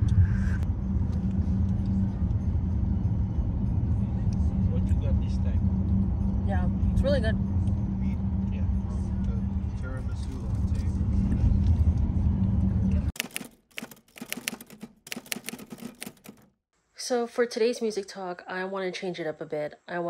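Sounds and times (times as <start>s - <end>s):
sharp clicks and rattles: 13.2s - 16.5s.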